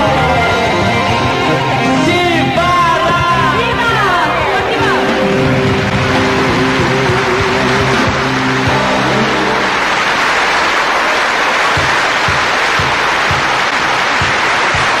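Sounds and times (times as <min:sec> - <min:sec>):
band playing held chord: 0:00.0 - 0:10.4
audience applauding: 0:04.8 - 0:15.0.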